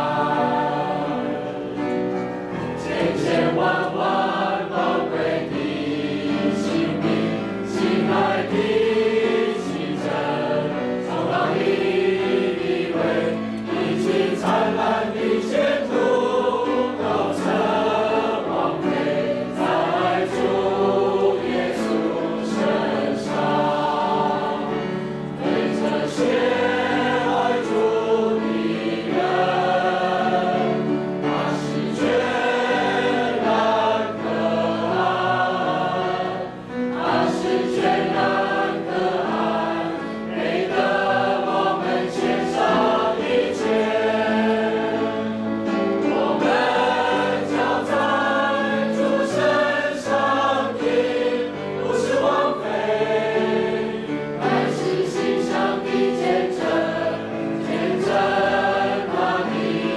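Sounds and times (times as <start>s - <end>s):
congregation singing a hymn: 0.0s - 59.9s.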